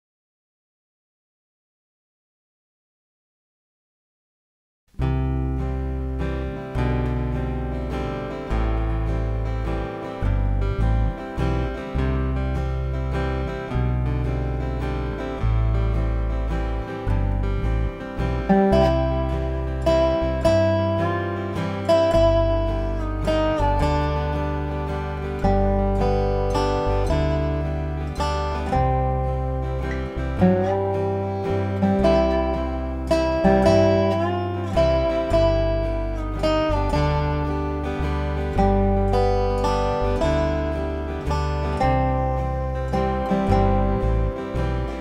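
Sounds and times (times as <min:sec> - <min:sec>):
resonator guitar slide melody: 0:05.0 - 0:45.0.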